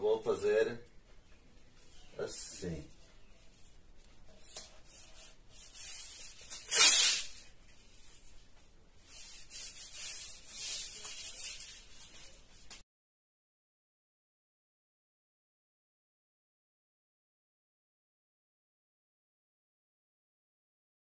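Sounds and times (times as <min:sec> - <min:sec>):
hand rubbing tape on board: 0:04.4 - 0:07.5, 0:09.0 - 0:12.8
masking tape ripping off roll: 0:05.8 - 0:07.5.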